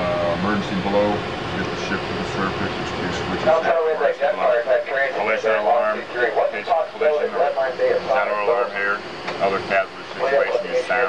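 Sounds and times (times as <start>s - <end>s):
low background hum: 0.0s - 11.0s
man talking: 0.0s - 11.0s.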